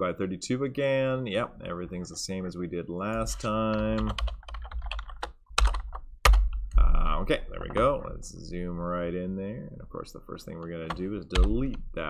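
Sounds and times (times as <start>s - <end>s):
typing on computer keyboard: 3.7s - 6.8s.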